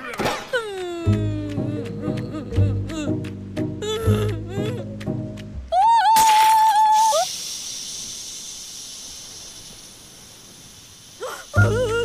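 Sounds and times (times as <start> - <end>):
soft high hiss: 6.9 - 12.0.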